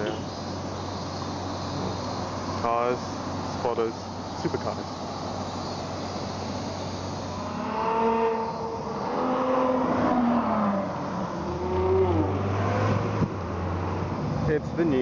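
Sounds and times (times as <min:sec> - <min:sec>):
low traffic hum: 0:00.0 - 0:15.0
sports car engine accelerating: 0:06.7 - 0:15.0.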